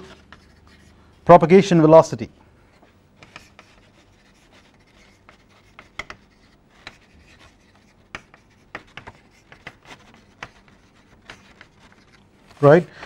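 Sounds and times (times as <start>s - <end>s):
chalk writing on a blackboard: 0.0s - 1.0s, 2.7s - 12.2s.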